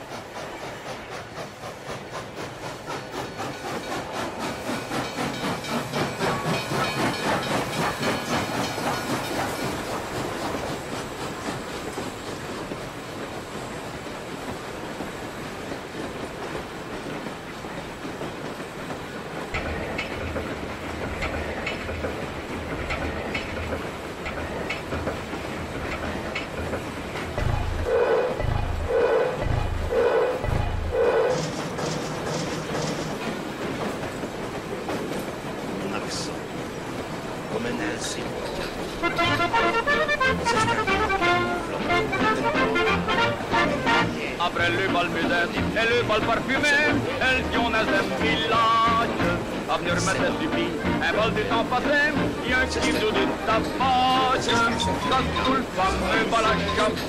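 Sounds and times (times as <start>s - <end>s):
train wheels clacking on rails: 0.0s - 57.0s
slow heavy pulses: 26.6s - 32.3s
low rumble: 27.4s - 31.1s.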